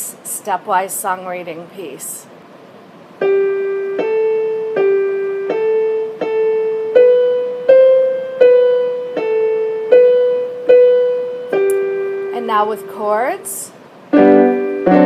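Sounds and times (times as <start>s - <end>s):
piano single-note melody: 3.2s - 13.3s, 14.1s - 15.0s.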